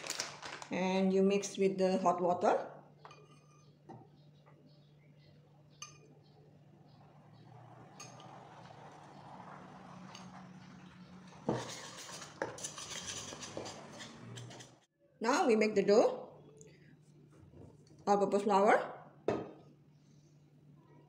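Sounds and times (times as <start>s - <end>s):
metal spoon scraping ceramic bowl: 3.1s - 3.8s, 11.3s - 14.9s.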